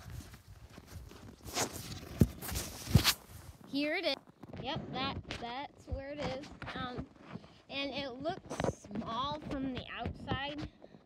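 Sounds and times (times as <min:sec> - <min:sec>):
footsteps crunching in snow: 0:00.0 - 0:03.7.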